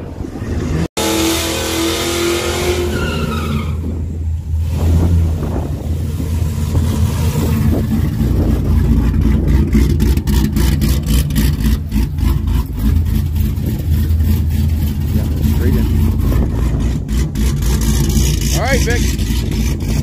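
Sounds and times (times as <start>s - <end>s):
car engine rumbling: 0.0s - 20.0s.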